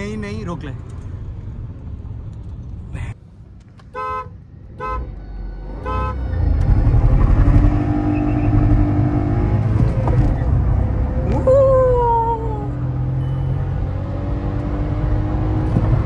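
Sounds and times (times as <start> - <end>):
car horn toots: 3.9 - 5.1.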